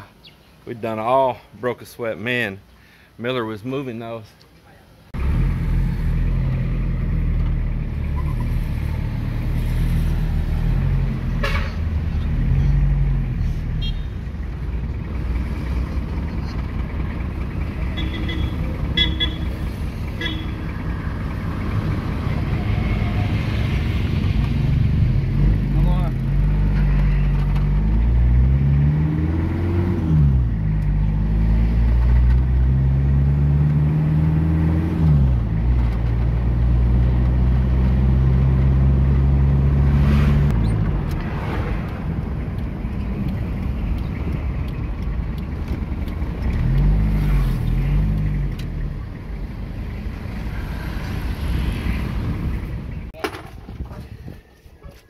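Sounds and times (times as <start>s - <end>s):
vehicle engine accelerating: 5.2s - 53.1s.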